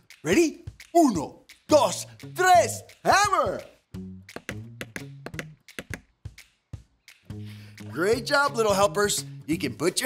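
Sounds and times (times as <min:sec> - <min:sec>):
background music: 0:00.0 - 0:10.0
hammer tapping on wood: 0:04.3 - 0:06.1.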